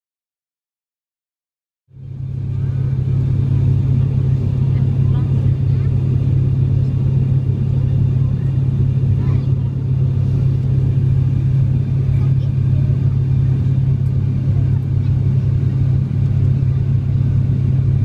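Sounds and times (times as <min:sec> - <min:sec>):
turboprop engines droning: 0:01.9 - 0:18.0.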